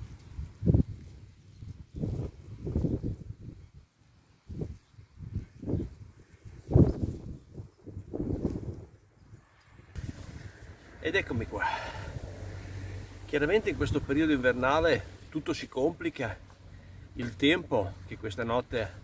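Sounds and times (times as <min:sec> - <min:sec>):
wind buffeting microphone: 0:00.0 - 0:15.3.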